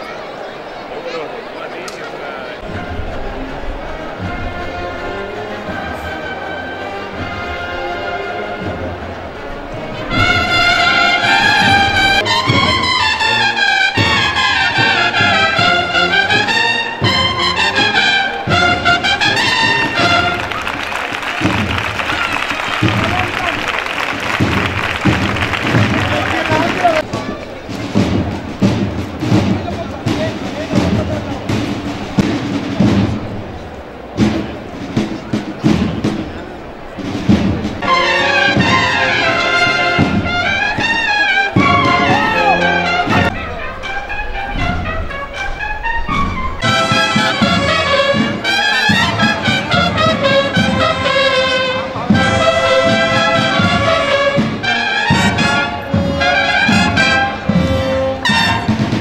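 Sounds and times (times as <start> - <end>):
trumpet melody: 2.6 - 27.2, 37.4 - 59.0
brass band playing a march: 2.6 - 59.0
drumbeats: 2.6 - 59.0.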